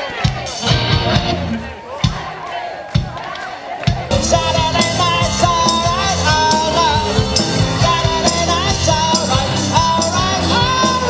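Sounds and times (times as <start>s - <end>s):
drums: 0.0s - 11.0s
lead vocals: 0.0s - 11.0s
rock and roll band: 0.0s - 11.0s
piano: 4.1s - 11.0s.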